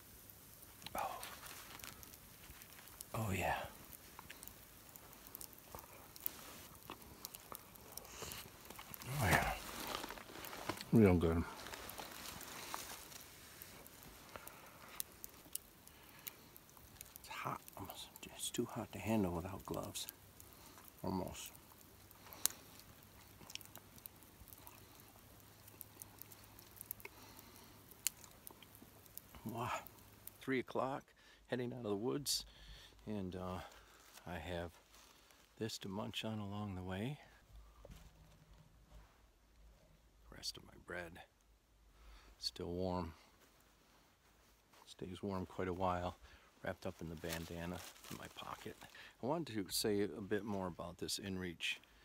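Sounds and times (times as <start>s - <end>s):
person chewing crusty bread: 0.2s - 17.9s, 20.1s - 30.4s.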